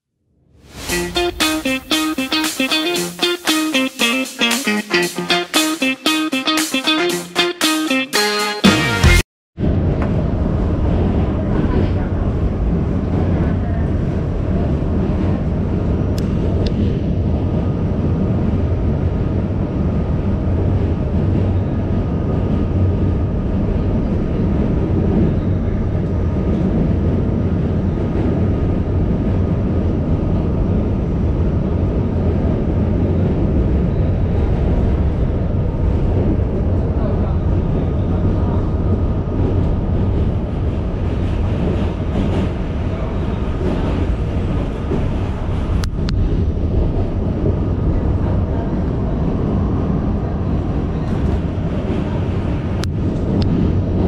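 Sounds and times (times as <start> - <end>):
train wheels rumbling on track: 9.6 - 54.0.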